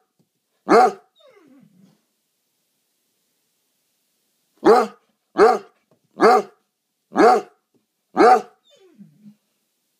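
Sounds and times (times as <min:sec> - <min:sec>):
dog barking: 0:00.6 - 0:01.1, 0:04.6 - 0:08.6
dog whining faintly: 0:01.2 - 0:02.0, 0:08.6 - 0:09.5.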